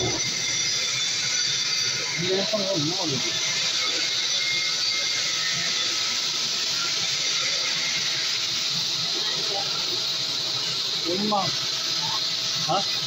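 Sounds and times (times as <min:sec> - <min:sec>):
laser cutting machine hissing: 0:00.0 - 0:13.0.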